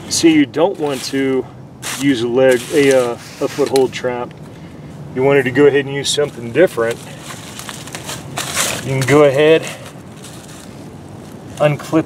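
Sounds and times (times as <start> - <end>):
dry leaves rustling and crackling: 0.7 - 1.2, 1.8 - 3.9, 6.0 - 11.8.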